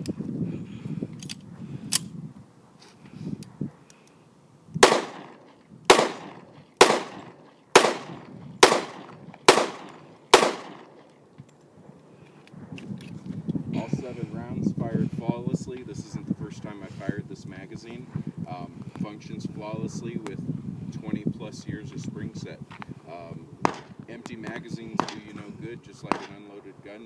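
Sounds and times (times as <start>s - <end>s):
pistol shots: 4.8s - 11.1s, 23.6s - 26.6s.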